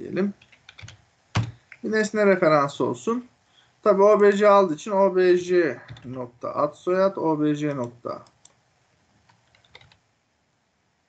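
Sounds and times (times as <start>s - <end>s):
computer keyboard typing: 0.4s - 1.6s, 5.8s - 6.2s, 9.2s - 10.0s.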